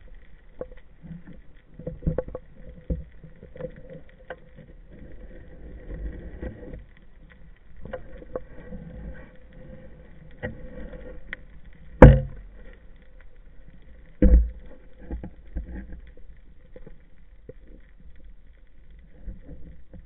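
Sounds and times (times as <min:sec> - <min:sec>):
underwater water rumbling: 0:00.0 - 0:20.0.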